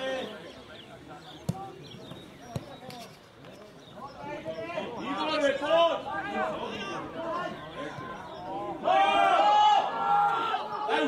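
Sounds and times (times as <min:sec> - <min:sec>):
football kicks thudding: 0:01.4 - 0:03.0
distant shouts from players: 0:04.2 - 0:11.0.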